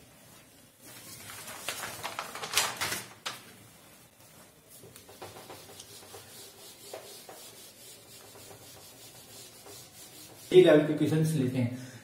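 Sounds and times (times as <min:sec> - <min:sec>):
eraser wiping a whiteboard: 0:03.7 - 0:11.3.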